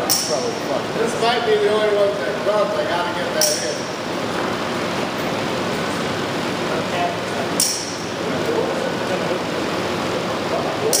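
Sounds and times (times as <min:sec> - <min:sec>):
diesel engine running: 0:00.0 - 0:11.0.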